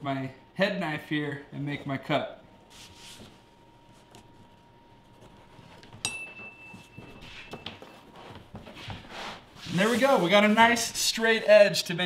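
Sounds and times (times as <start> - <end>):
sharp metal clink: 6.0 - 6.7.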